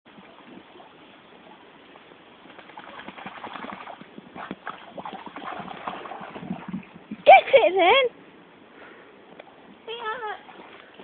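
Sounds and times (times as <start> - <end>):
dog splashing through water: 2.4 - 7.2.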